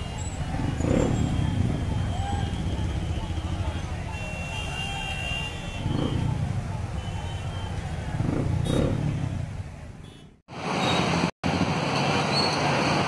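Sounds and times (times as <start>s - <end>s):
crowd voices: 0.0s - 10.1s
motorcycle engines rumbling: 0.0s - 13.0s.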